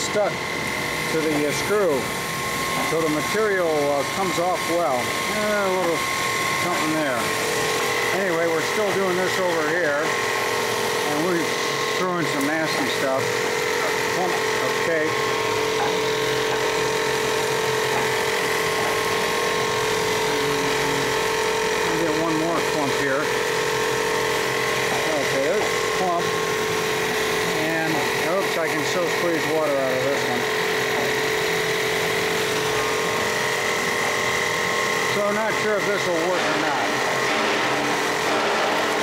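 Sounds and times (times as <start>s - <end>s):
press machine hum and whine: 0.0s - 39.0s.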